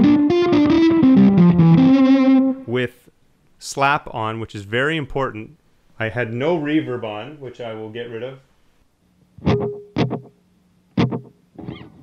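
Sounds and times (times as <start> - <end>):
electric guitar chords with delay: 0.0 - 2.7, 9.4 - 10.3.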